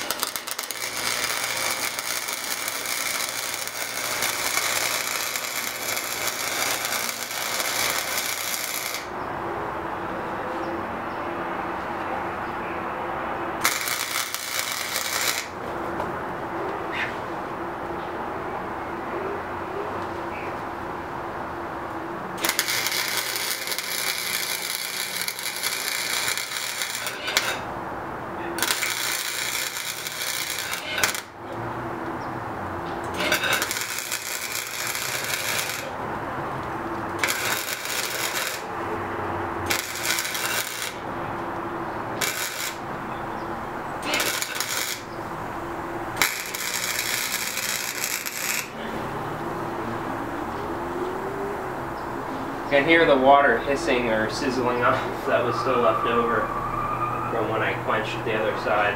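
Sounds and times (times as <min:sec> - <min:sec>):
crackling arc welding: 0:00.0 - 0:09.2, 0:13.6 - 0:15.6, 0:22.3 - 0:27.7, 0:28.5 - 0:31.6, 0:32.8 - 0:36.0, 0:36.6 - 0:38.8, 0:39.5 - 0:43.1, 0:43.7 - 0:48.8.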